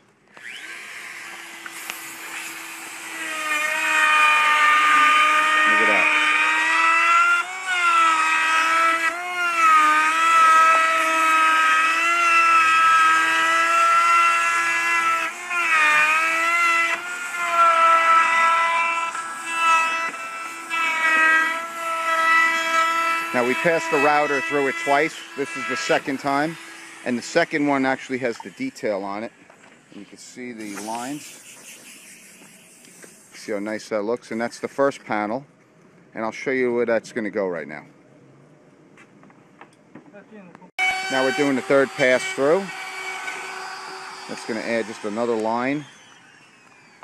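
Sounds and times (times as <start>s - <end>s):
router motor whine: 0.3s - 33.6s, 40.8s - 47.0s.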